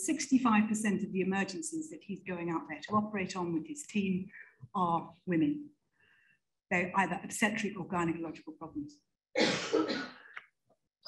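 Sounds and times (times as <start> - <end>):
woman clearing her throat: 9.4 - 10.2.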